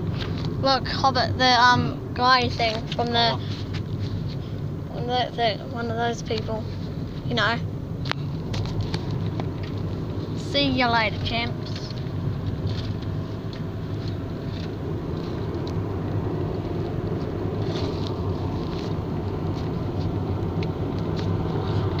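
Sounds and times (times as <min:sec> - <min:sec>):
vehicle engine and tyre rumble: 0:00.0 - 0:22.0.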